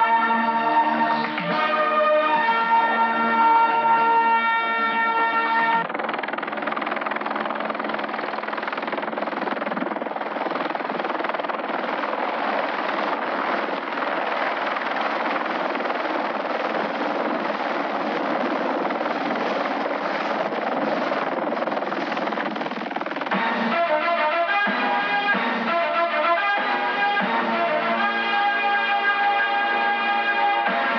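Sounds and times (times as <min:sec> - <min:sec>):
helicopter hovering: 0:00.0 - 0:30.9.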